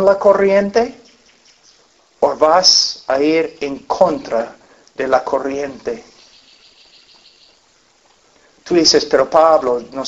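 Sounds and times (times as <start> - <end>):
high-pitched insect chirping: 6.1 - 7.9.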